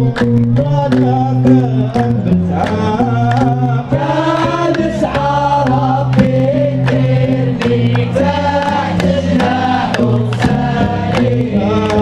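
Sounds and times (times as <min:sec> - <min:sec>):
steady percussion beat: 0:00.3 - 0:12.0
male choir chanting in unison: 0:02.7 - 0:12.0.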